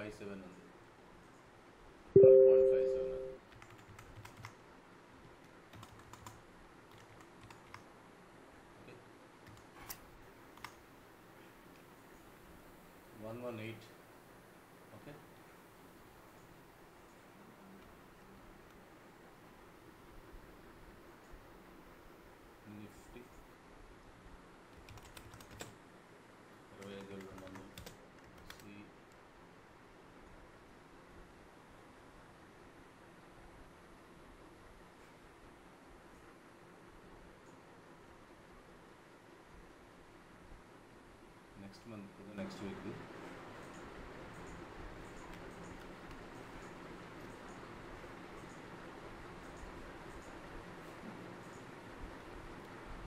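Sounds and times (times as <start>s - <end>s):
two-note ringing tone: 2.2s - 3.4s
computer keyboard keystrokes: 3.5s - 4.6s, 5.4s - 7.9s, 9.4s - 10.8s, 24.7s - 25.8s, 26.8s - 28.8s.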